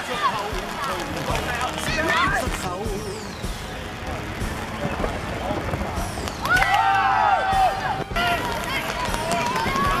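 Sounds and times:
boys shouting and cheering: 0.0 - 3.0, 6.4 - 10.0.

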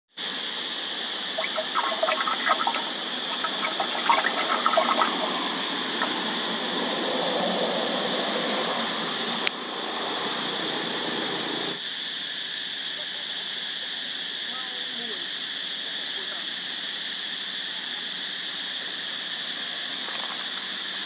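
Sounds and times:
high-pitched insect drone: 0.2 - 21.0
small splashes and gurgles: 1.4 - 6.2
stick stirring water: 1.4 - 6.2.

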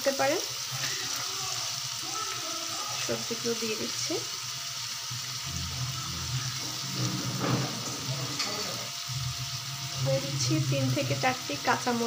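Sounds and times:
vegetables sizzling in hot oil: 0.0 - 12.0.

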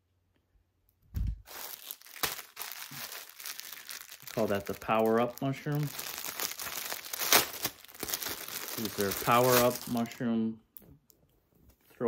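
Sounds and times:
package packaging crinkling: 1.4 - 10.2.

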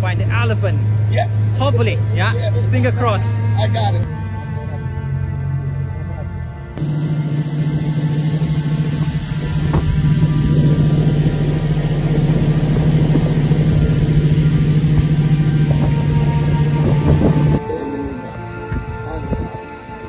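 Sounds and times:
wind: 0.0 - 20.0
outboard motor running: 6.7 - 17.6
rushing water: 6.8 - 17.6.

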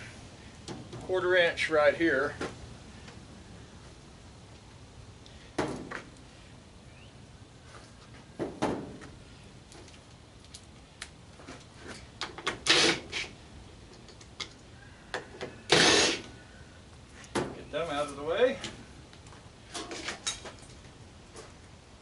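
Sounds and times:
cordless drill whirring: 15.7 - 16.2.

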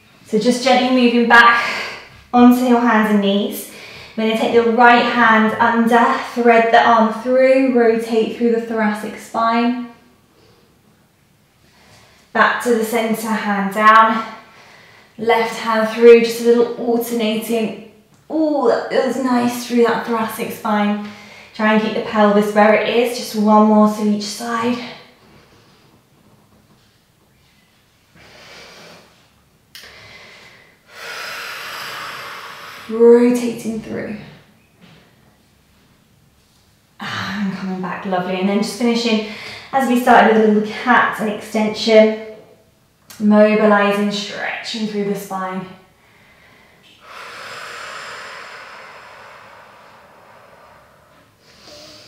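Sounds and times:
woman breathing: 3.6 - 4.2, 14.2 - 15.2, 21.0 - 21.6, 28.1 - 33.0, 39.2 - 39.8, 45.9 - 52.0
woman exhaling: 29.8 - 33.0, 46.1 - 52.0.

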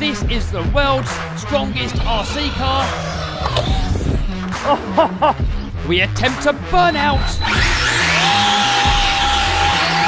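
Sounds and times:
electric motor whining: 1.6 - 4.6, 7.0 - 10.0.

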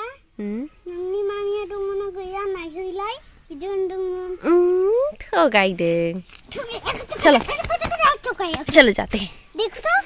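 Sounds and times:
child humming a tune: 0.0 - 2.6, 3.9 - 5.2.

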